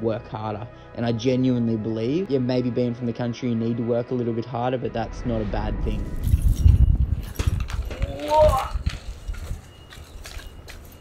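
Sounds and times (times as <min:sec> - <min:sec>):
steady low rumble: 0:04.8 - 0:08.0
faint footsteps: 0:06.1 - 0:11.0.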